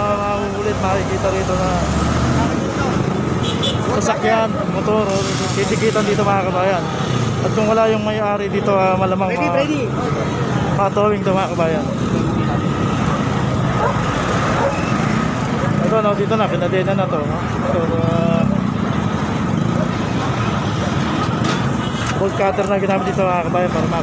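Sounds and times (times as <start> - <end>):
people talking: 0.0 - 3.1, 3.9 - 13.5, 15.8 - 18.6, 22.1 - 24.0
traffic hum: 0.0 - 24.0.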